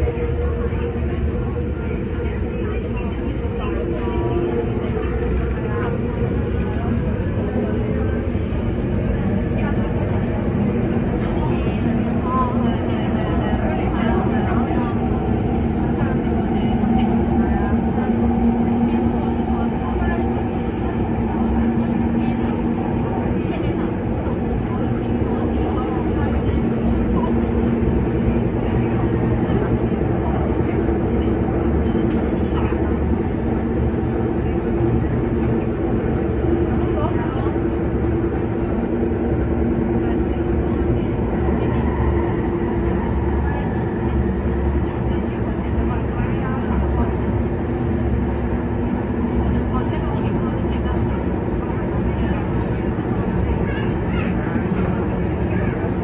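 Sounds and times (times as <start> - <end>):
train running gear hum: 0.0 - 56.0
train wheels rumbling on rail: 0.0 - 56.0.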